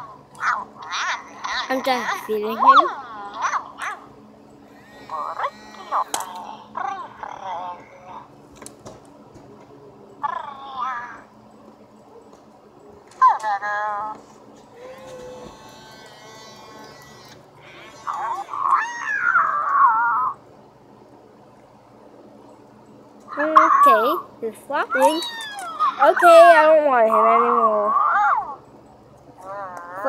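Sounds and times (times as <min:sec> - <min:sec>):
toy creature calls from speaker: 0:14.8 - 0:20.3.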